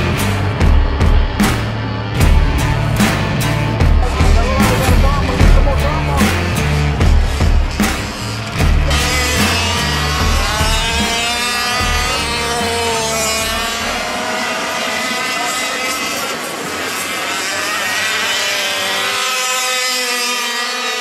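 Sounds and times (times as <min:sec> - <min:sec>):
background music with bass line: 0:00.0 - 0:14.3
rc car engines revving: 0:00.0 - 0:21.0.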